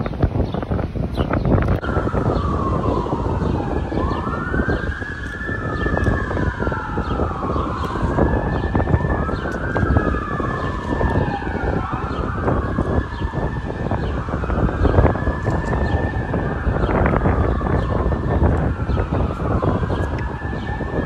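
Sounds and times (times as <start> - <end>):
siren wailing: 1.6 - 21.0.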